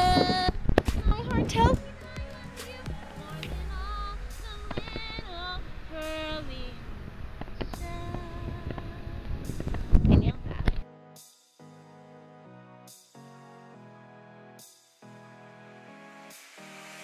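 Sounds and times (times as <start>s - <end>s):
woman singing wordlessly: 0.0s - 6.9s, 7.7s - 9.4s
wind rumbling on microphone: 0.0s - 10.8s.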